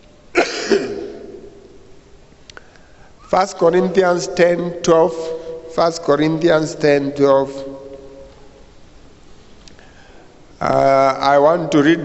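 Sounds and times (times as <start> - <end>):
man clearing his throat: 0.4 - 1.6.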